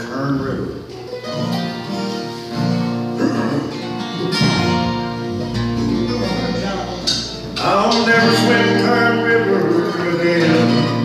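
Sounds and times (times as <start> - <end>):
acoustic guitars playing country music: 0.0 - 11.0.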